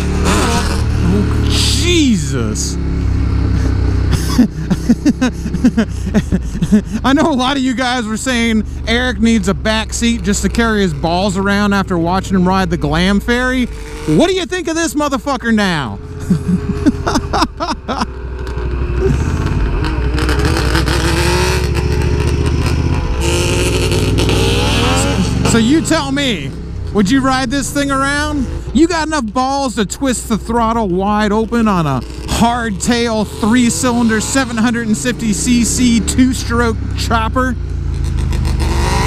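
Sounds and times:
motorcycle engine drone: 0.0s - 39.0s
wind: 0.0s - 39.0s
man laughing: 0.9s - 2.6s, 3.5s - 9.1s, 15.7s - 18.2s, 19.0s - 19.5s, 24.9s - 29.1s, 32.4s - 37.4s.

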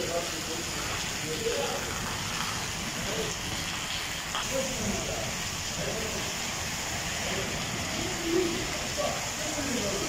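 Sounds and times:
rain on hard wet floor: 0.0s - 10.0s.

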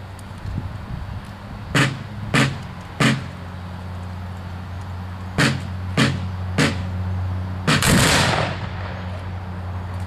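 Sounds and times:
sharp gunshot reports: 5.4s - 6.8s, 7.7s - 9.0s.

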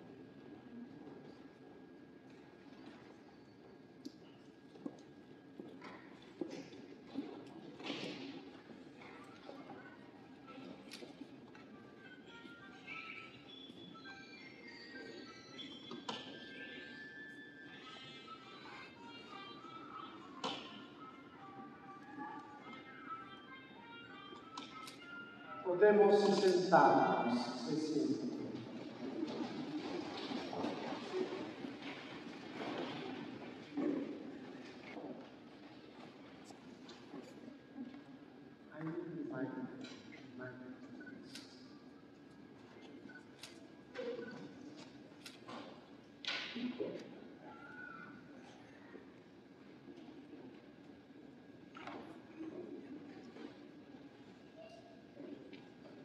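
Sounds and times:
indistinct background noise in hall: 0.0s - 56.0s.

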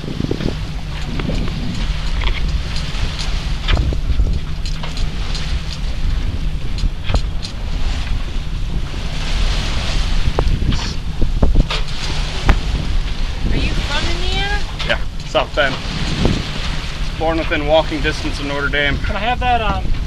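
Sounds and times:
water rushing along hull: 0.0s - 20.0s
wind buffeting microphone: 0.0s - 20.0s.

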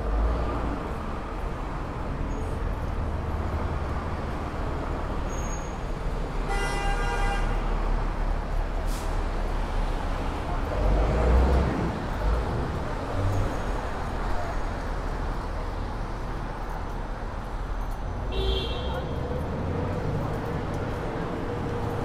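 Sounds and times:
city traffic rumble: 0.0s - 22.0s
vehicle horn: 6.4s - 7.7s, 18.3s - 19.1s.

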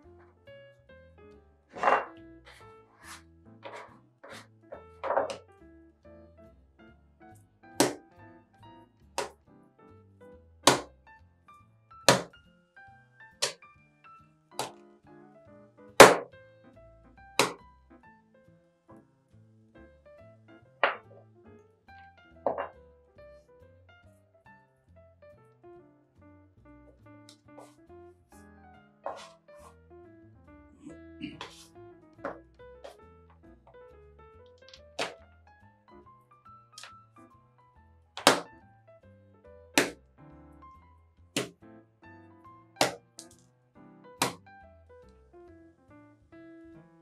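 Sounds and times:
soft background music: 0.0s - 47.0s
dough slapped onto wooden worktop: 7.8s - 8.0s, 10.7s - 10.9s, 12.1s - 12.3s, 14.6s - 14.8s, 16.0s - 16.3s, 17.4s - 17.6s, 29.1s - 29.3s, 34.7s - 35.2s, 38.2s - 38.5s, 39.8s - 40.0s, 41.4s - 41.6s, 42.8s - 43.4s, 44.2s - 44.4s.

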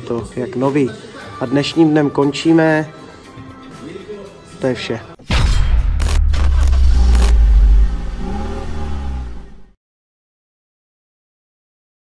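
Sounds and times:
sharp hits: 5.2s - 9.7s
deep engine-like rumble: 6.2s - 9.7s.

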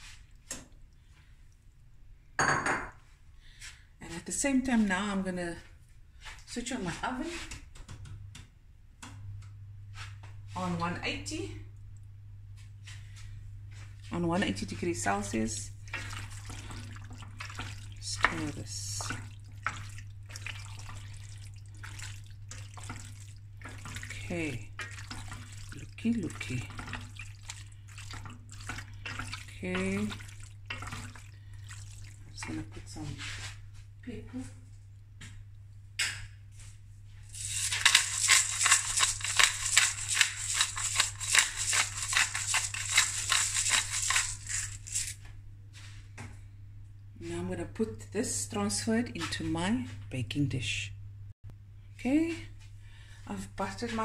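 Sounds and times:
steady low hum: 8.1s - 54.0s
spoon stirring thick food in pot: 15.9s - 32.6s, 37.4s - 45.2s
pepper mill grinding: 37.3s - 45.2s.

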